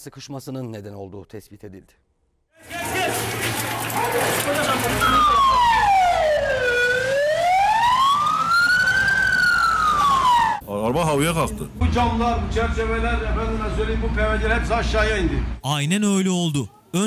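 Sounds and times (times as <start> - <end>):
noisy street with voices: 2.6 - 17.0
ambulance siren wailing: 3.8 - 10.6.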